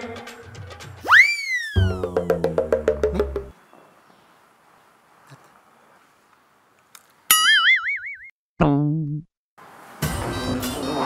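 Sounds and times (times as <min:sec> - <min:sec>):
cartoon boing effects: 0:01.5 - 0:03.5, 0:07.3 - 0:09.0.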